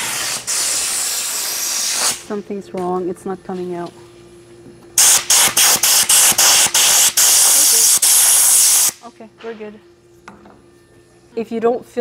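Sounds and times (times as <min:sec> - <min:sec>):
compressed air hissing: 0:00.0 - 0:02.3, 0:05.0 - 0:09.0.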